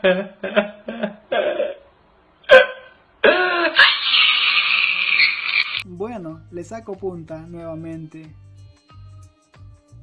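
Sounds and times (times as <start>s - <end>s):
man crying: 0.9s - 1.9s, 2.5s - 3.8s.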